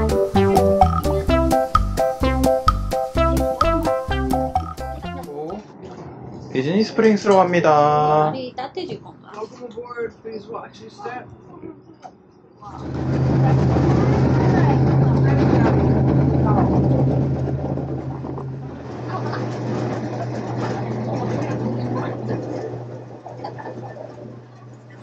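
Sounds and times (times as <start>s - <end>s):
boat engine drone: 12.7s - 25.0s
voices: 18.9s - 25.0s.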